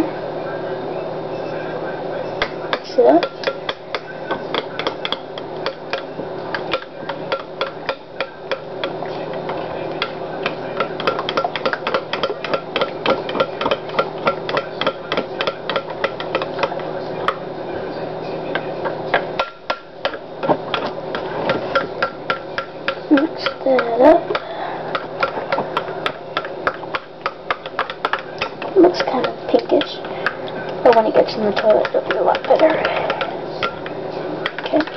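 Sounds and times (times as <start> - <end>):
spoon clinking against glass bowl: 9.9 - 16.7.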